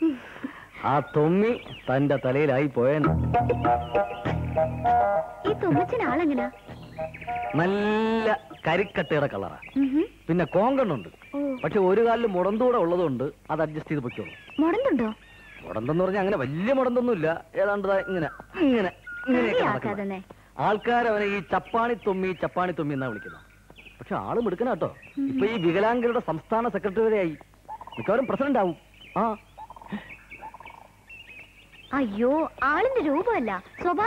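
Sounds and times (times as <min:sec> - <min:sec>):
high-pitched bird chirps: 0:03.1 - 0:12.6, 0:14.1 - 0:16.1, 0:17.9 - 0:20.0.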